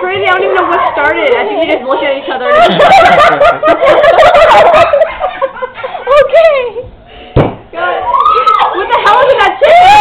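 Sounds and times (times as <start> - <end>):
women laughing hysterically: 2.4 - 6.3
thump: 7.3 - 7.7.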